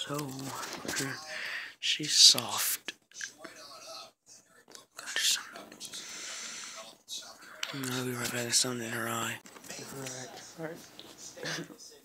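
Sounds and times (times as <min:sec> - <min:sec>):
person whispering: 0:00.0 - 0:03.7, 0:04.8 - 0:10.4.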